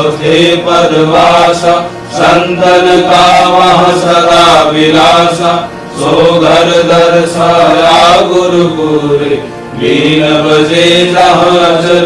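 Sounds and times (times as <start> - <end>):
chanted prayer song: 0.0 - 12.0
steady low drone: 0.0 - 12.0.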